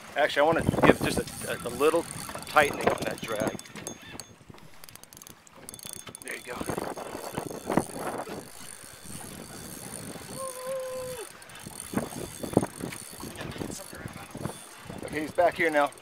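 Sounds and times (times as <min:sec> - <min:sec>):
fishing reel clicking and whirring: 0:00.5 - 0:16.0.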